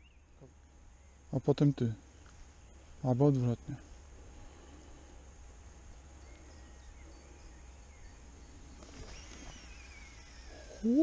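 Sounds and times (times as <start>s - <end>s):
faint bird calls: 4.3s - 11.0s
rising bird call: 8.9s - 11.0s.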